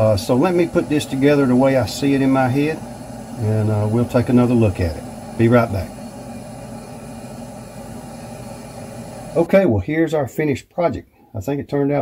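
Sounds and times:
low hum: 0.0s - 9.5s
room noise hiss: 0.0s - 12.0s.

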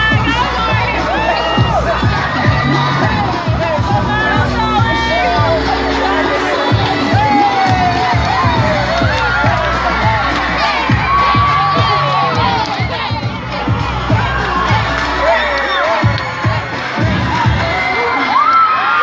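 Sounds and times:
crowd cheering and shouting: 0.0s - 19.0s.

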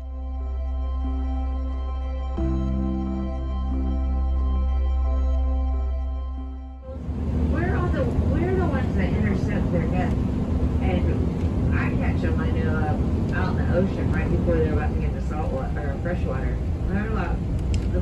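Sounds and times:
vehicle rumble from inside cabin: 6.8s - 18.0s
person talking: 10.8s - 18.0s.

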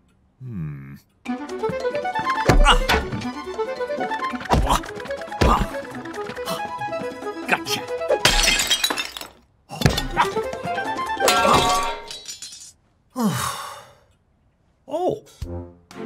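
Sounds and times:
cartoon score music: 1.3s - 8.2s, 10.0s - 12.0s, 15.4s - 16.0s.

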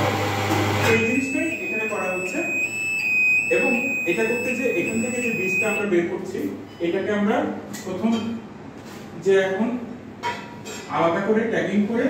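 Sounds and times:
high-pitched electronic tone: 0.8s - 5.8s
low machine hum: 0.8s - 5.8s
man talking: 3.5s - 6.5s.

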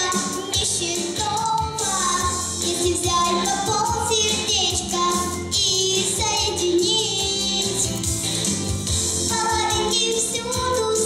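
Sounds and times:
girl singing into a microphone: 0.0s - 7.8s, 9.3s - 11.0s
backing music: 0.0s - 11.0s.

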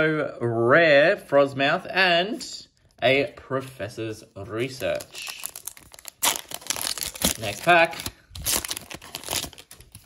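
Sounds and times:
foil wrapper crinkling: 4.7s - 10.0s.

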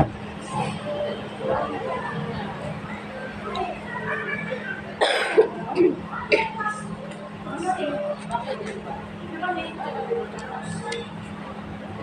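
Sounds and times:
person coughing: 5.0s - 6.5s.

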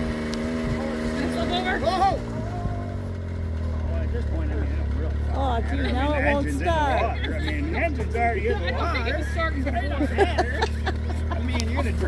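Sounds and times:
low steady motor hum: 0.0s - 12.0s
faint voices: 0.6s - 12.0s.

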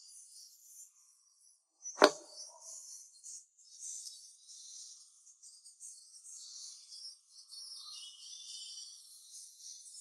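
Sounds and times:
sharp knock on a surface: 2.0s - 2.2s.

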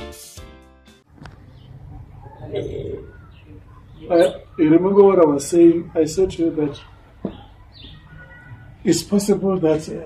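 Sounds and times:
bird calling: 1.4s - 9.8s
faint voices: 1.4s - 10.0s.

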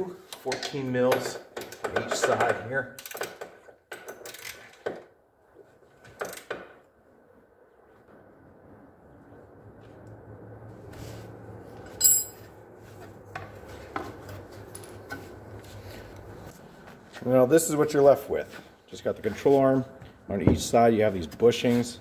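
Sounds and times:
ringing metal clink: 11.9s - 12.5s.

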